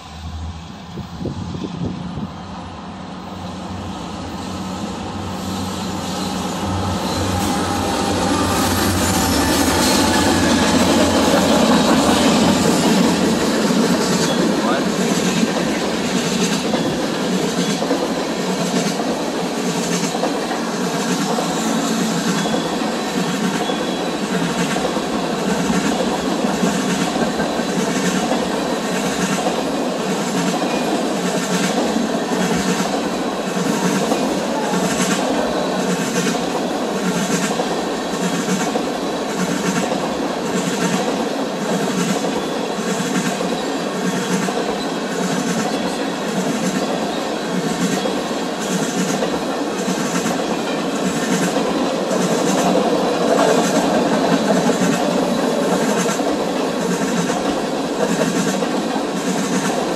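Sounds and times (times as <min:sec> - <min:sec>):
freight train wheels rumbling: 0:00.0 - 0:59.9.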